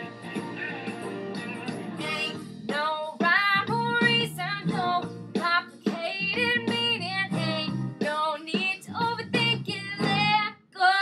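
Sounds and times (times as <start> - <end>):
woman singing: 2.0 - 11.0.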